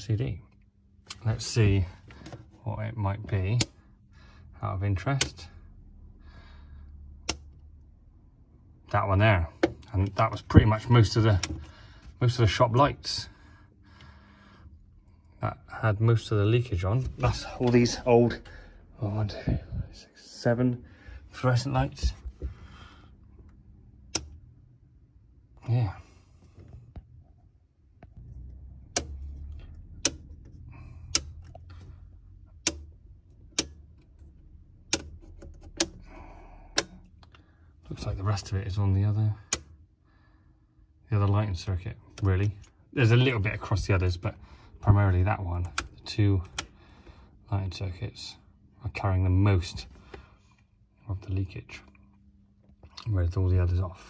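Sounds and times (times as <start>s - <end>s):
circuit breakers clicking off: 5.0s - 5.5s, 7.2s - 7.7s, 24.0s - 24.6s, 28.2s - 37.4s, 39.4s - 39.8s, 42.0s - 47.0s
circuit breaker click: 24.0s - 24.4s, 28.9s - 29.3s, 30.0s - 30.3s, 45.6s - 46.8s.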